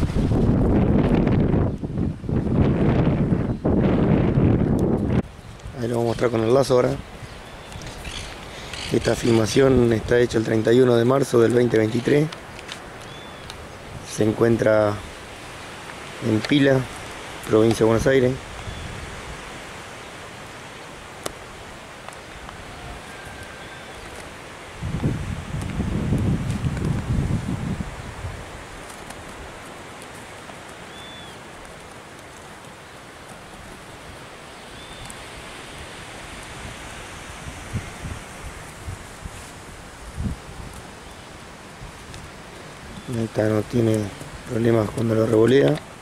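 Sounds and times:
wind buffeting microphone: 0.0 - 10.6, 24.7 - 29.6, 34.8 - 46.0.

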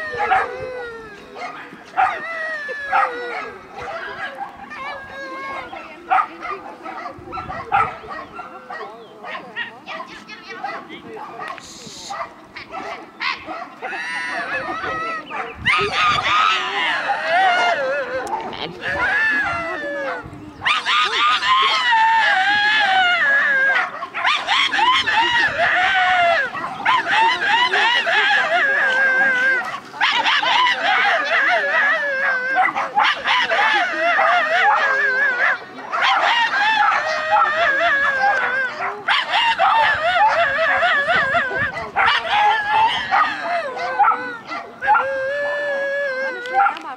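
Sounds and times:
dog barking howling and yelping: 0.0 - 46.9.

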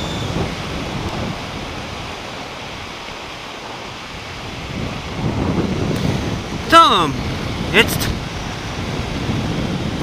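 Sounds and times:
road noise: 0.0 - 10.0
wind rushing over microphone: 0.0 - 10.0.

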